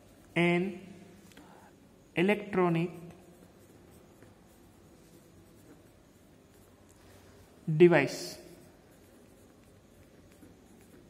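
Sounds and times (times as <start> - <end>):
pencil scratching on paper: 2.3 - 11.0.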